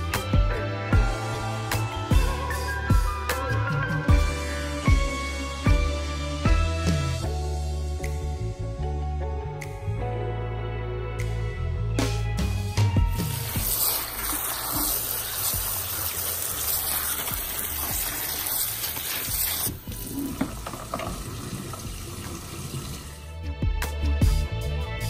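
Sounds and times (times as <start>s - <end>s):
background music: 0.0s - 25.0s
tap water splashing: 14.2s - 23.0s.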